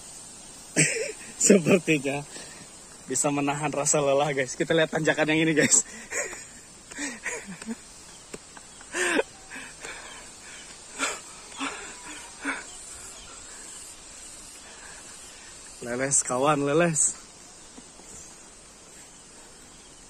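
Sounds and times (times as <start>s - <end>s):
faint outdoor hiss: 0.0s - 20.0s.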